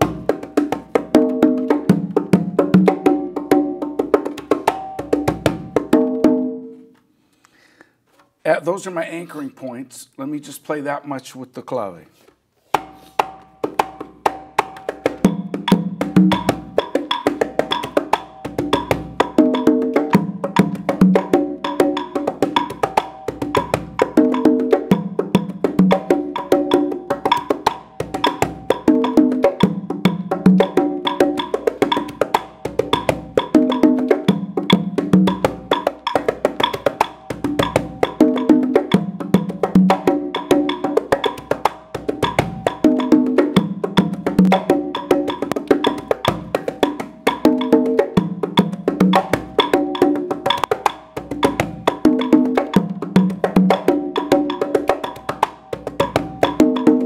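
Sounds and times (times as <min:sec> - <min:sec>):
conga drums playing: 0:00.0 - 0:06.9, 0:12.7 - 0:57.0
wooden clave rhythm: 0:00.0 - 0:06.9, 0:12.6 - 0:57.0.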